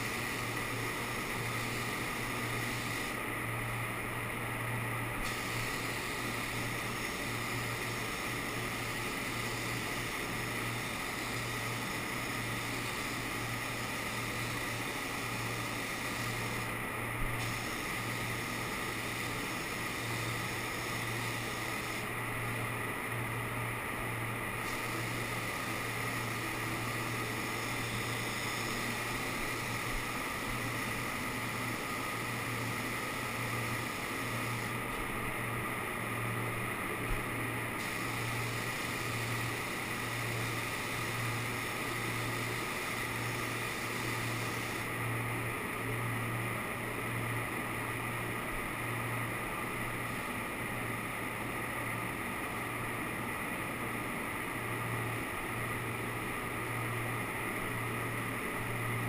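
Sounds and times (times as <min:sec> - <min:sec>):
paint spray gun hissing: 0:00.0 - 0:03.2, 0:05.2 - 0:22.2, 0:24.6 - 0:35.2, 0:37.8 - 0:44.9
steady low hum: 0:00.0 - 0:59.0.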